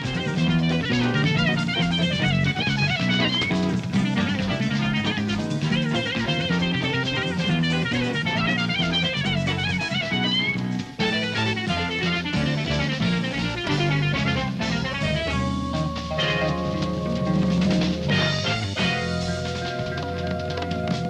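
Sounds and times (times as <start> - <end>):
bass and drums: 0.0 - 21.0
electric guitar lead: 0.0 - 21.0.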